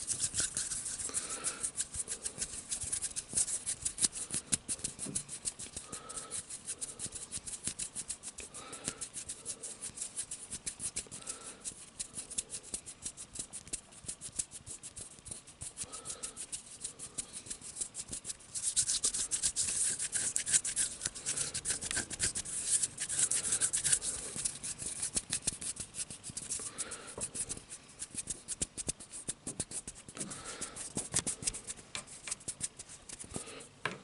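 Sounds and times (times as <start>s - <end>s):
hands rubbing together: 0.0s - 33.6s.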